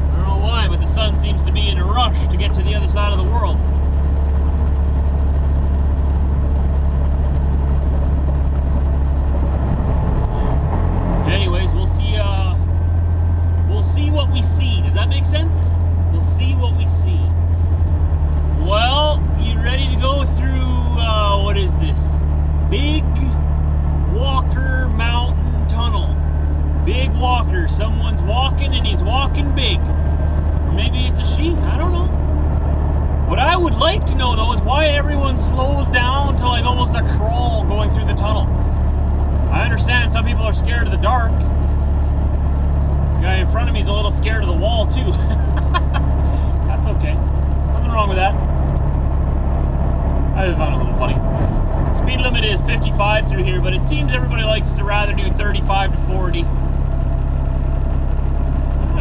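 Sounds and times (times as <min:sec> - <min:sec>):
truck engine and tyres droning: 0:00.0 - 0:59.0.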